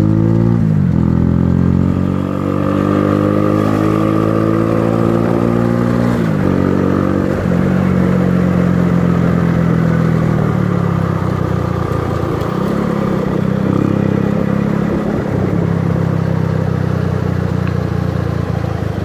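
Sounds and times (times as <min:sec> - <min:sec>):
motorcycle engine running: 0:00.0 - 0:19.0.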